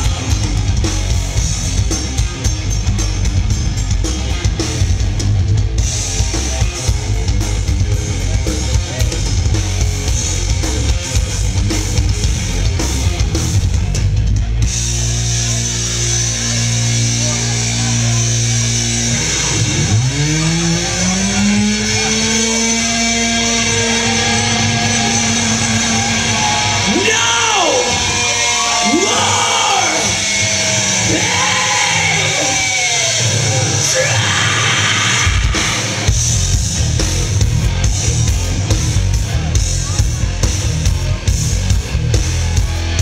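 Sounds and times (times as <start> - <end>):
heavy rock band playing: 0.0 - 43.0.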